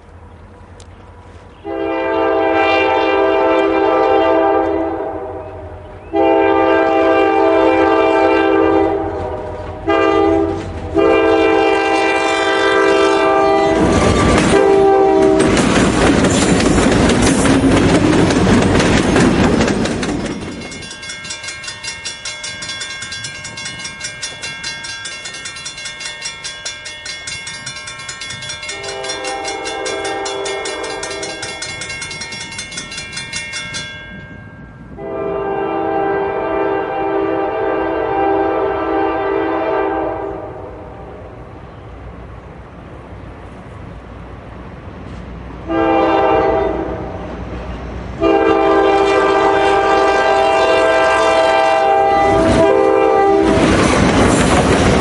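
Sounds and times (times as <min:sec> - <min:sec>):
locomotive engine rumbling: 0:00.0 - 0:55.0
locomotive horn blasts: 0:01.6 - 0:15.6, 0:28.7 - 0:31.6, 0:34.9 - 0:41.1, 0:45.6 - 0:47.3, 0:48.2 - 0:53.6
crossing signal bell ringing: 0:20.1 - 0:35.1.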